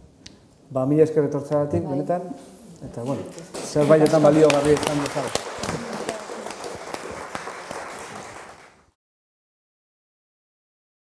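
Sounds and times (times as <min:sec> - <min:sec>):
audience applauding: 0:03.3 - 0:09.0.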